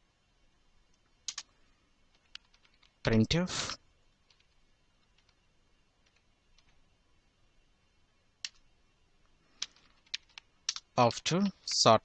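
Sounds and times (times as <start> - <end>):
computer keyboard typing: 1.2 - 1.5, 2.1 - 3.0, 4.2 - 5.4, 6.0 - 6.8, 8.4 - 8.6, 9.6 - 11.8.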